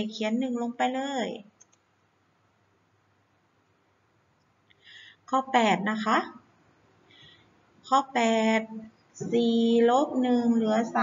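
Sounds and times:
woman speaking: 0:00.0 - 0:01.5, 0:05.3 - 0:06.5, 0:07.9 - 0:11.0.

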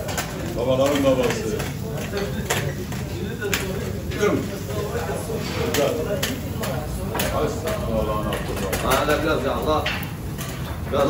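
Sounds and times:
grill hissing: 0:00.0 - 0:11.0.

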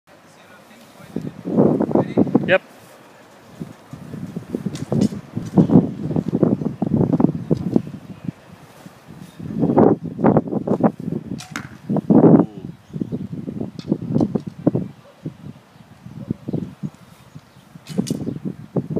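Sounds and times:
bow shooting arrows: 0:04.7 - 0:05.7, 0:10.7 - 0:11.9, 0:17.8 - 0:18.3.

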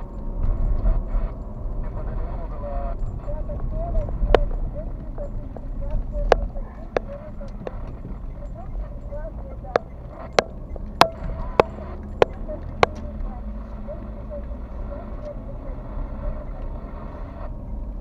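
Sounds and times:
car engine and tyres rumbling: 0:00.0 - 0:18.0
turn signal ticking: 0:00.0 - 0:18.0.

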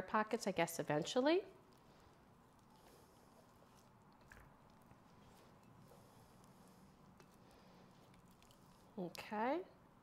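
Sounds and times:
wet squishing of dough: 0:00.5 - 0:09.6.

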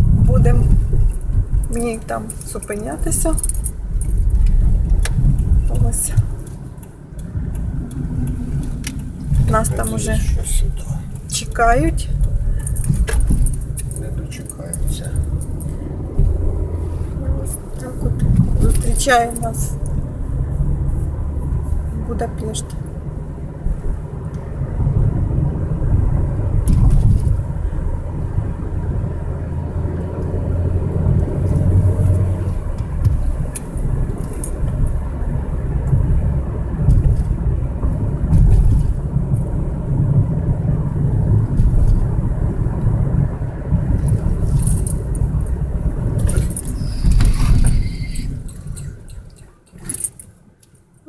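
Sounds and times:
car engine and road rumble: 0:00.0 - 0:51.0
light clicks and rattles: 0:00.4 - 0:20.0, 0:43.9 - 0:51.0.

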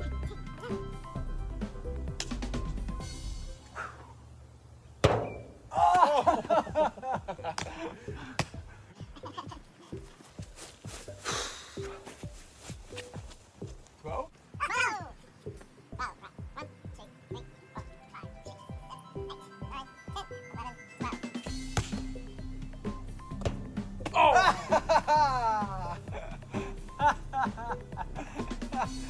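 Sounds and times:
background music: 0:00.0 - 0:29.0
ball thunk in metal wheelbarrow: 0:05.0 - 0:05.7, 0:21.6 - 0:22.2, 0:23.3 - 0:24.2
excited shouting: 0:05.7 - 0:06.4, 0:14.6 - 0:15.2, 0:24.1 - 0:26.1.

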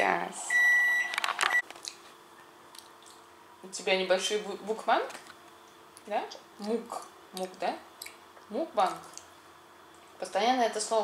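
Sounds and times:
appliance electronic beep: 0:00.5 - 0:01.7.

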